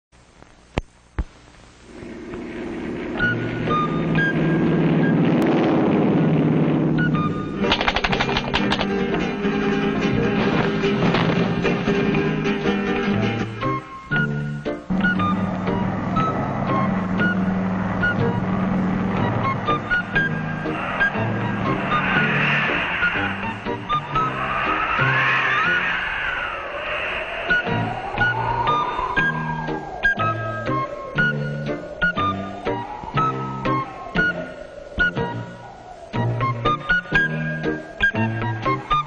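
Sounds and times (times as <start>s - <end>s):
airplane engines running: 1.8s - 39.0s.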